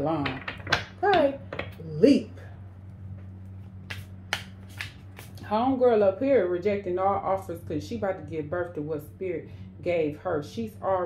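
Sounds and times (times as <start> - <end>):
steady low hum: 0.0 - 11.0
cards slapping while shuffled: 3.8 - 5.4.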